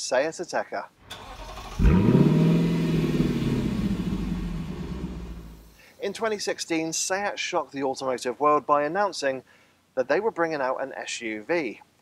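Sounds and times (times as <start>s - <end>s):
car engine revving: 1.1s - 5.7s.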